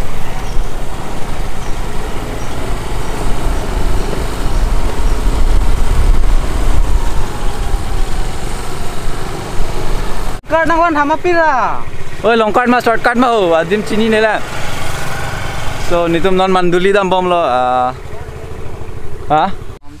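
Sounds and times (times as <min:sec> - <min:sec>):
wind rumble on microphone: 0:00.0 - 0:10.4
small motorbike engine running: 0:00.0 - 0:20.0.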